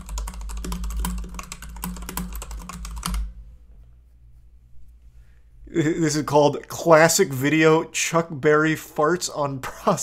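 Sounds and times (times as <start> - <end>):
fast keyboard typing: 0.0 - 3.3.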